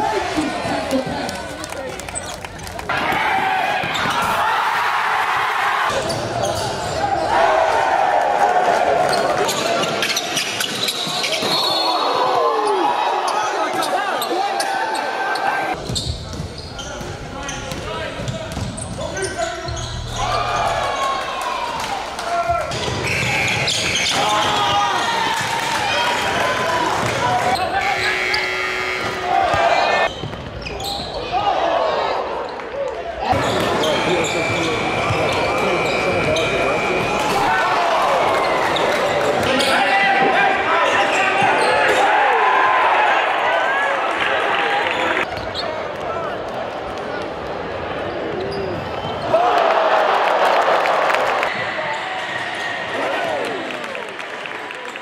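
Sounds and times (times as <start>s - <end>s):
voices in large hall: 0.0s - 55.0s.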